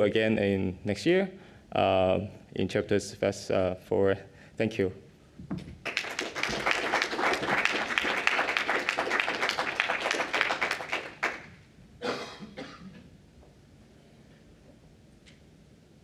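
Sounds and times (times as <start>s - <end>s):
audience applauding: 5.8s - 11.6s.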